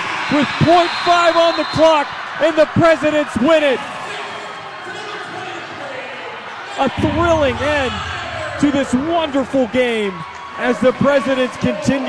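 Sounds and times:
crowd cheering and talking: 0.0 - 12.0
man commentating: 6.8 - 10.2.

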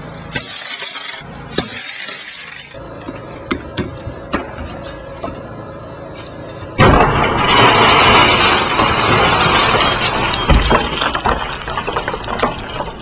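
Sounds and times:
breaking glass crackle: 0.4 - 2.8, 6.7 - 13.0
car windshield smashing: 6.8 - 13.0.

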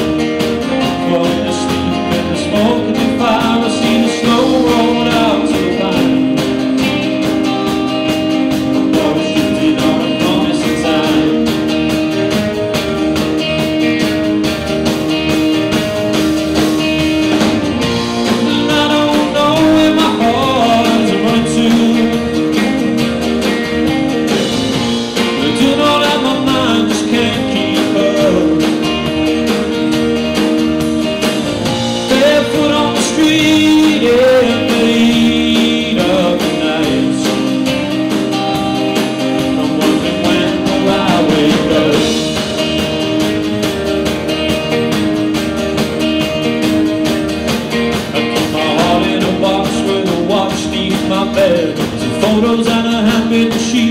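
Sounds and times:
acoustic guitar: 0.0 - 53.9
bass guitar: 0.0 - 53.9
drums: 0.0 - 53.9
electric guitar: 0.0 - 53.9
man singing: 0.7 - 11.9, 18.3 - 22.9, 25.2 - 29.2, 32.0 - 38.4, 39.0 - 42.7, 48.4 - 53.9.

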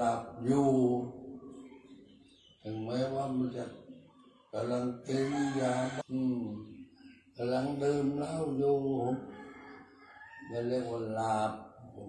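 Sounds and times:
man chanting in monotone: 0.0 - 1.4, 2.6 - 3.9, 4.5 - 6.8, 7.4 - 9.4, 10.5 - 12.0.

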